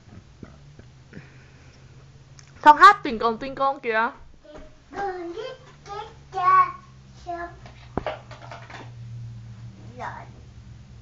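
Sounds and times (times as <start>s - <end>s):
toddler singing wordlessly: 4.5s - 7.7s.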